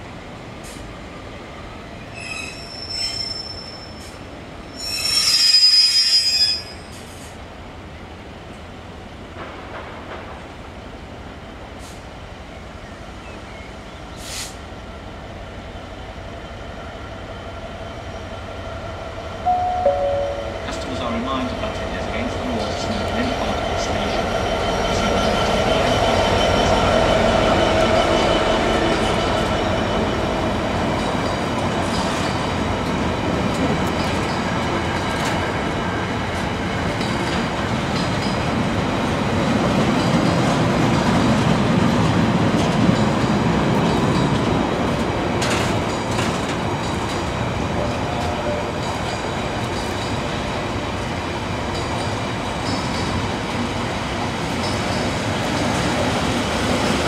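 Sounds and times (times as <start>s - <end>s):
train wheels on rails: 0.0s - 57.0s
diesel locomotive engine: 6.9s - 57.0s.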